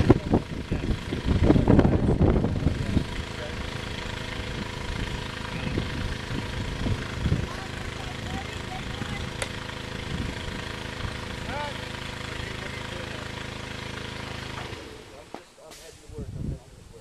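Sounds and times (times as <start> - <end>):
engine idling: 0.0 - 17.0
indistinct voices: 5.4 - 9.5.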